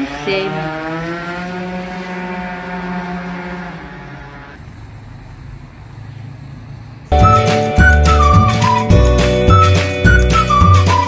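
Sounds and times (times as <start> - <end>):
passing vehicle engine: 0.0 - 10.6
low hum of traffic: 0.0 - 11.0.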